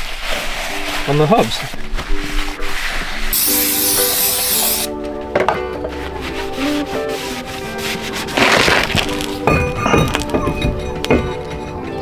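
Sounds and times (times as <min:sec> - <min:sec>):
background music: 0:00.6 - 0:12.0
brake cleaner spray: 0:03.3 - 0:04.9.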